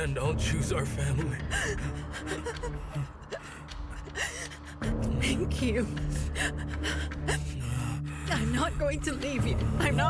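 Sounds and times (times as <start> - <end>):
soft music score: 0.0 - 10.0
woman crying and sobbing: 1.4 - 10.0.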